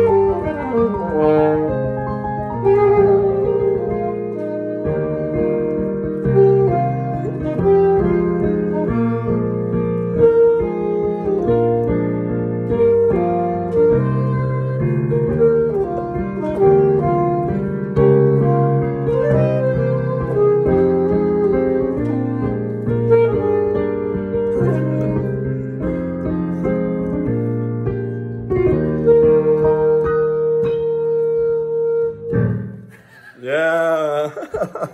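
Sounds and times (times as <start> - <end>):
saxophone melody: 0.0 - 32.9
piano chords: 0.0 - 34.9.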